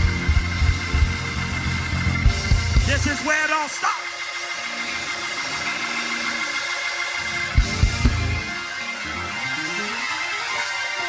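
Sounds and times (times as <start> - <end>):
music with sustained chords: 0.0 - 11.0.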